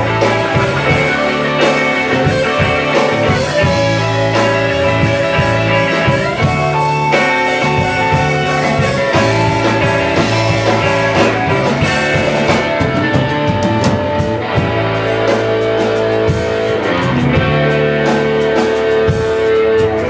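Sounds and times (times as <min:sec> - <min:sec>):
electric guitars playing: 0:00.0 - 0:20.0.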